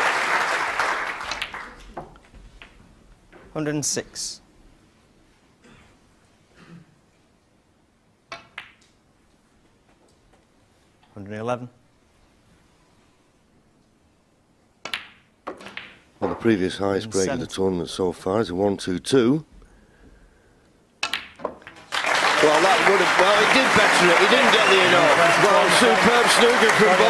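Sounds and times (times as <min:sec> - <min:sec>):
snooker balls clicking together: 0:01.2 - 0:02.8, 0:08.3 - 0:09.0, 0:21.0 - 0:21.9.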